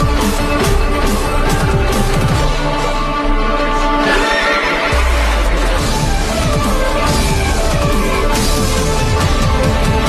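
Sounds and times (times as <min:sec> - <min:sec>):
stage music: 0:00.0 - 0:10.0
horse whinny: 0:04.0 - 0:05.3.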